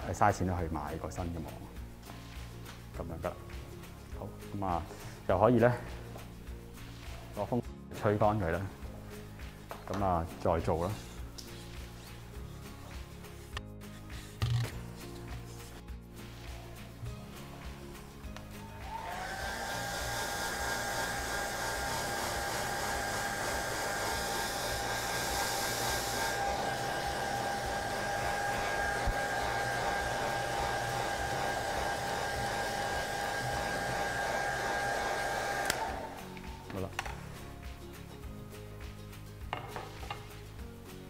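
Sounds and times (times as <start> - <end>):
faint background music: 0.0 - 41.0
hair dryer blowing: 18.6 - 36.6.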